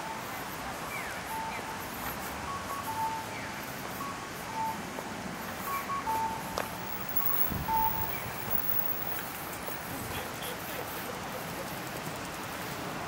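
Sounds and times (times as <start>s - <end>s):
city traffic hiss: 0.0s - 13.0s
electronic two-note crossing chime: 6.0s - 9.2s
wind rumble on microphone: 6.8s - 10.2s.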